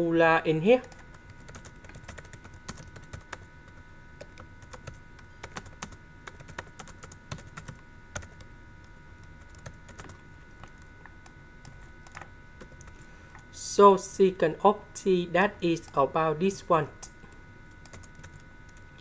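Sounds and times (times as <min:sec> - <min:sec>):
faint steady whine: 0:00.0 - 0:19.0
keyboard typing: 0:00.8 - 0:03.5, 0:04.2 - 0:08.5, 0:09.3 - 0:10.9, 0:17.7 - 0:18.9.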